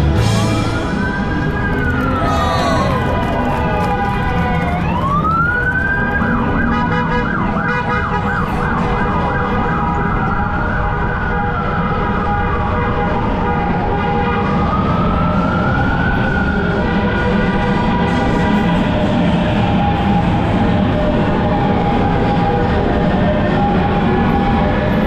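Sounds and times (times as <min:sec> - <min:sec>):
emergency siren wailing: 0:00.2 - 0:25.0.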